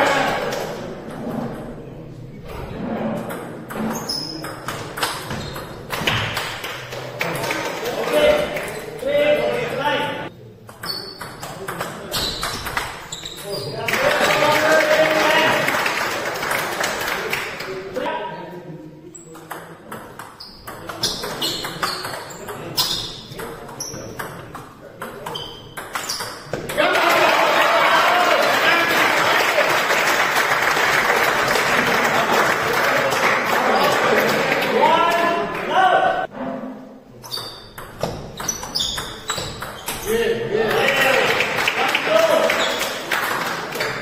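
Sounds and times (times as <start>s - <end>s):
audience applause and cheering: 26.8s - 34.6s.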